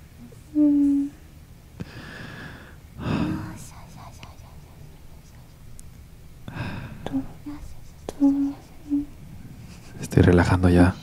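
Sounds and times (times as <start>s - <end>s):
woman whispering softly: 3.2s - 5.6s, 7.0s - 9.1s.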